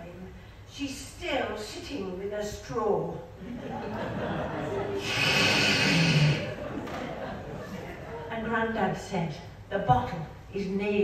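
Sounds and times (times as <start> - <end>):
slurping through a straw: 5.0 - 6.4.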